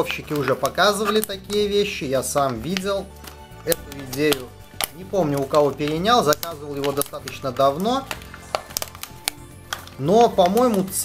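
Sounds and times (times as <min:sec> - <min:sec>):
plastic bag crinkling: 0:00.0 - 0:11.0
quiet background music: 0:00.0 - 0:11.0.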